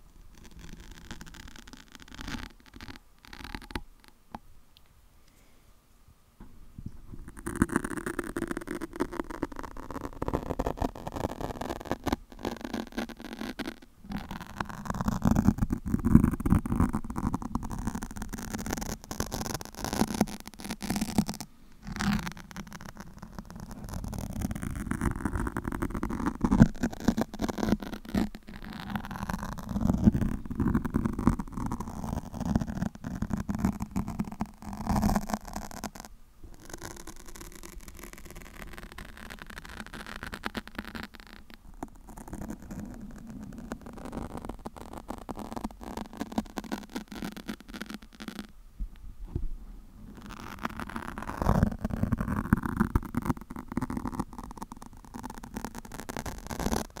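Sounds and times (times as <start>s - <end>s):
fingernails scratching microphone windscreen: 0.0s - 3.8s, 7.0s - 48.5s, 50.1s - 57.0s.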